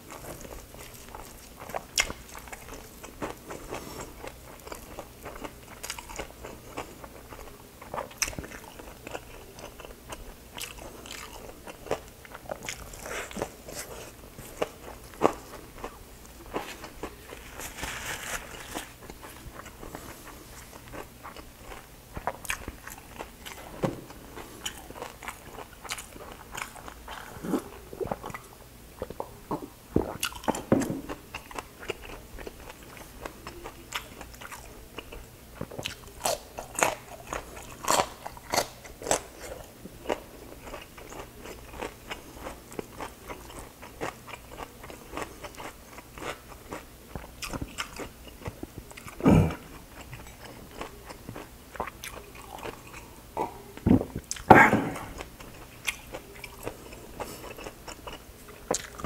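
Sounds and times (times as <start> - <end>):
crunchy food chewing: 0.0 - 59.0.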